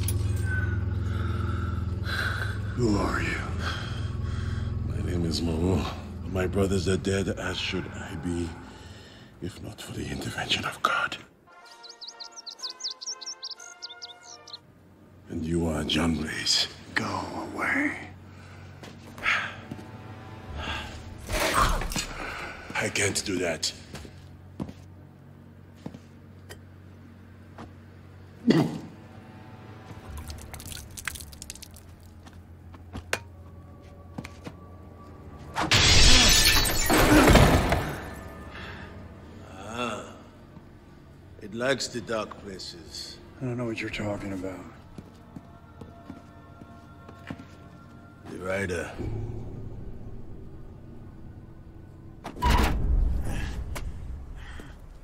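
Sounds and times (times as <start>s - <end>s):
bird chirping rapidly: 11.6s - 14.6s
glass bottle smashing: 30.2s - 31.9s, 35.7s - 37.9s.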